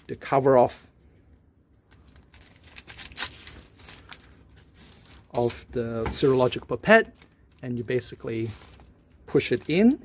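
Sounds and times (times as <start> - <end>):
plastic wrapper crinkling and tearing: 1.3 - 10.0.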